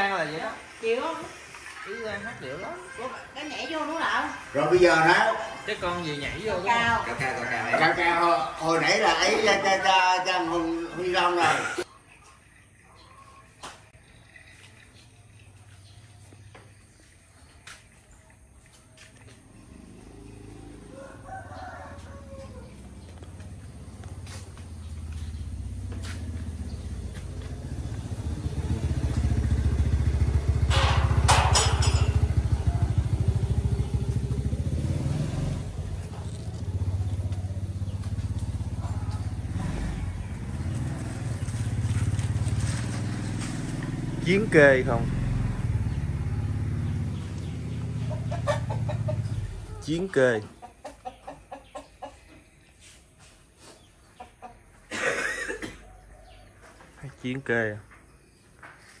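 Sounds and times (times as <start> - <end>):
engine running: 19.0 - 49.7
rooster crowing: 20.6 - 23.3
rooster clucking: 47.8 - 52.6, 53.9 - 54.9.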